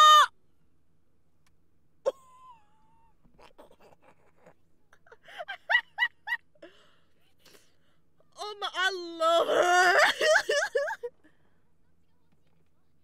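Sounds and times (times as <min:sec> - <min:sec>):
woman squealing: 0:00.0 - 0:00.3, 0:08.4 - 0:11.0
woman laughing: 0:02.1 - 0:06.6, 0:09.5 - 0:11.2.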